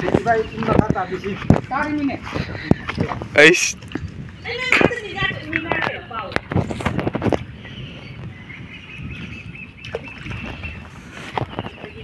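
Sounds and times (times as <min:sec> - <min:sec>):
water sloshing and splashing: 0:00.0 - 0:12.0.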